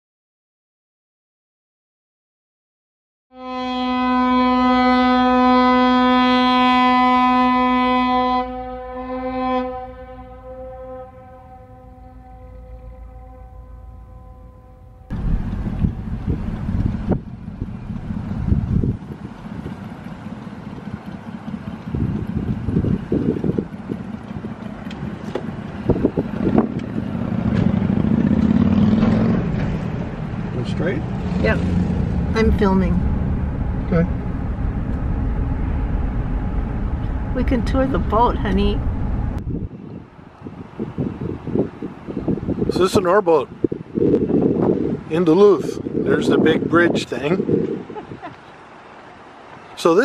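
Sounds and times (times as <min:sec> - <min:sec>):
ship's horn blast: 0:03.3 - 0:15.8, 0:31.2 - 0:39.4
pitched engine hum: 0:03.6 - 0:42.8, 0:47.4 - 0:50.0
car road and engine rumble: 0:04.2 - 0:50.0
wind noise: 0:15.1 - 0:28.1, 0:31.0 - 0:48.4.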